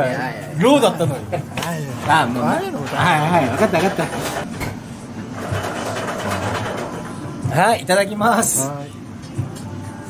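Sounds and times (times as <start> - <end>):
indistinct murmur of diners: 0.0 - 10.0.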